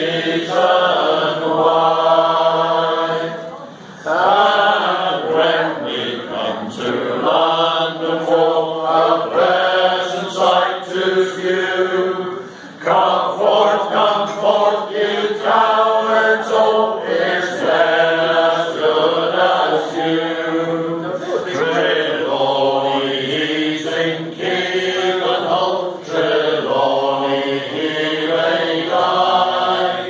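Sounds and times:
men singing unaccompanied: 0.0s - 3.4s, 4.0s - 30.0s.

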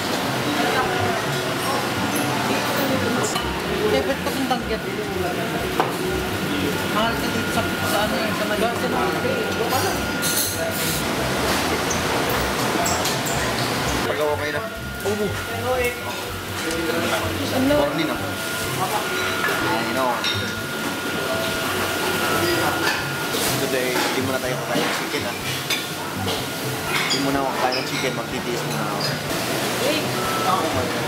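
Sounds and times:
voices chattering: 0.4s - 29.3s
dishes and utensils clinking: 0.6s - 5.1s, 5.7s - 14.2s, 18.8s - 21.5s, 22.3s - 29.3s.

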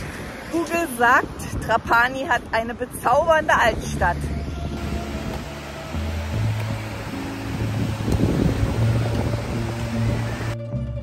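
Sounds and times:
background music: 3.8s - 11.0s.

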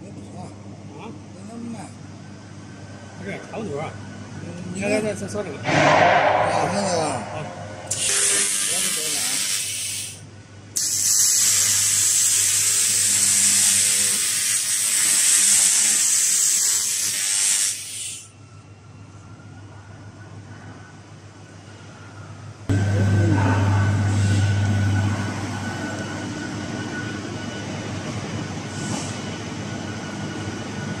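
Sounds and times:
machine hum: 0.8s - 8.6s, 18.4s - 31.0s
laser cleaner hissing crackle: 7.9s - 10.2s, 10.8s - 18.3s
faint high whine: 18.3s - 31.0s.

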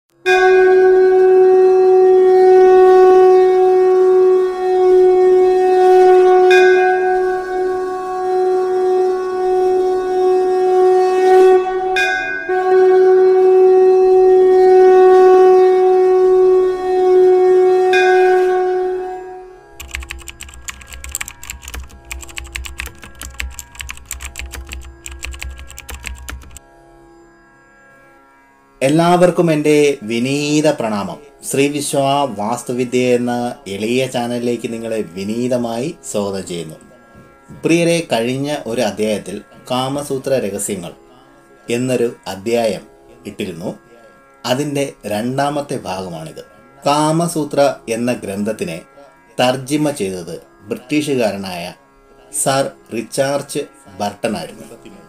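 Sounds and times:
long horn note: 0.2s - 19.8s
keyboard typing: 19.8s - 26.6s.

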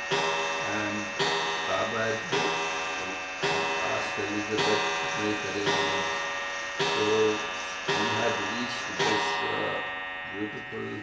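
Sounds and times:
bell ringing: 0.0s - 11.0s.

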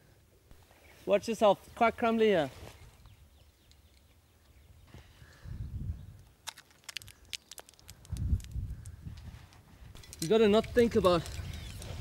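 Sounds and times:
wind gusts on microphone: 4.6s - 6.3s, 7.9s - 12.0s
small sharp clicks and taps: 6.2s - 9.0s.

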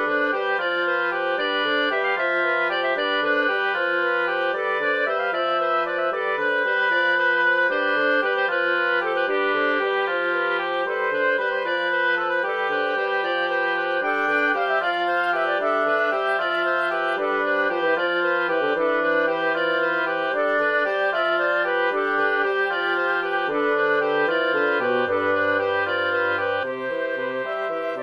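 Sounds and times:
synthesized wind quartet: 0.0s - 28.0s.

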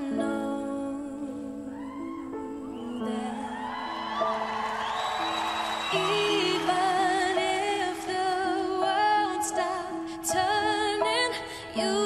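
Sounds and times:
slow pop ballad chords: 0.0s - 12.0s
audience cheering and whooping: 3.4s - 7.9s.

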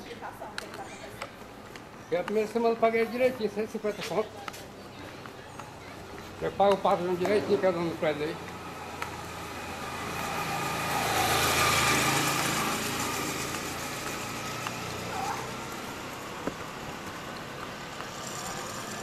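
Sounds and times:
vehicle passing by: 6.3s - 19.0s.

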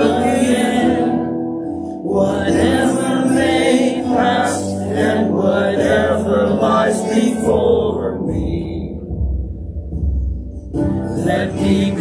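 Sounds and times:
congregation singing a worship song: 0.0s - 9.4s, 10.9s - 12.0s.

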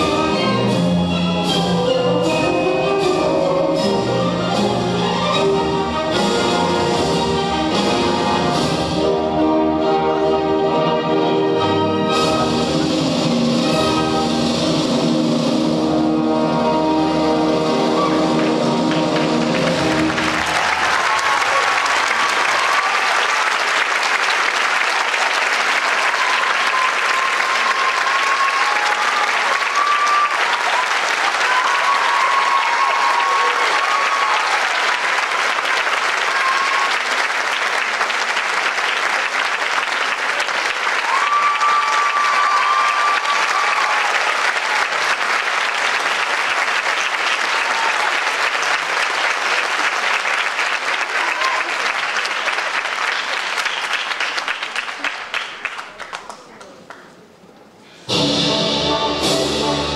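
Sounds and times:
audience applauding: 17.8s - 57.2s
recorded music: 58.1s - 59.9s.

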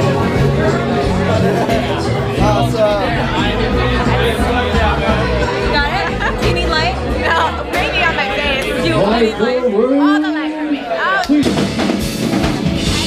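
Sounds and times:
live rock band playing: 0.0s - 9.4s, 11.2s - 13.0s
club music: 0.0s - 9.9s, 10.8s - 13.0s
voices talking: 0.0s - 11.4s.

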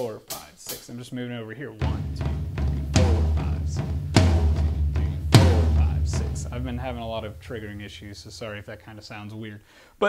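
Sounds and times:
continuous low boom: 1.8s - 8.8s
heavy tom drum hits: 1.8s - 8.9s.

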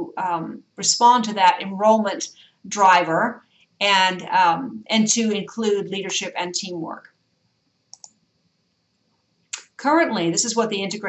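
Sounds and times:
quick clicks: 7.9s - 8.2s.

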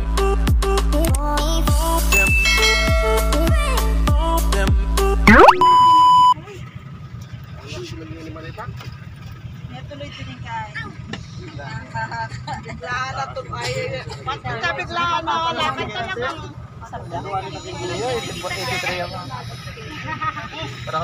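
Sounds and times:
engine low rumble: 0.0s - 21.0s
intro jingle music: 2.1s - 4.4s
loud steady beep: 5.3s - 6.4s
passengers chatting: 7.5s - 21.0s.

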